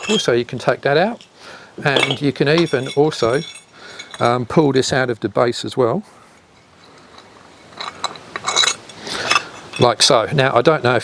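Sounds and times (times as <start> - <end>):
metal clinking and rattling: 0.0 - 4.6, 6.5 - 10.2.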